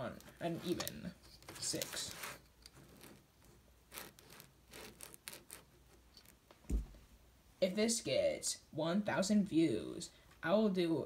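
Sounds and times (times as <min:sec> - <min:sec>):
rubbing and rustling: 0:00.0 - 0:07.1
low thump: 0:06.6 - 0:07.0.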